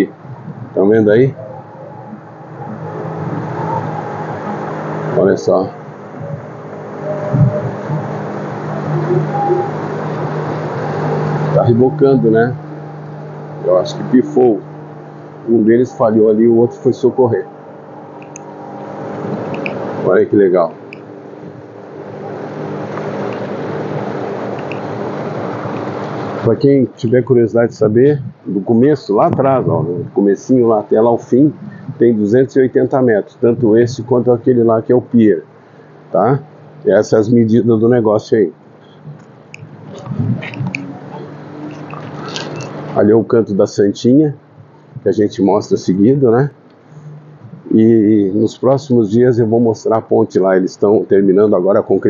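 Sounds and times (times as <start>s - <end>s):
jet ski engine humming: 0.0s - 49.6s.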